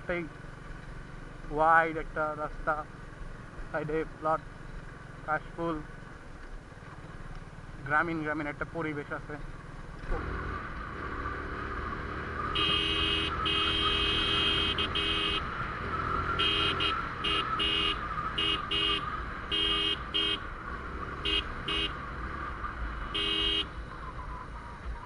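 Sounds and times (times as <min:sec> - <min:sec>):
motorcycle engine: 0:09.4 - 0:25.0
motorcycle horn honking: 0:12.5 - 0:15.5, 0:16.4 - 0:20.4, 0:21.2 - 0:22.0, 0:23.1 - 0:23.7.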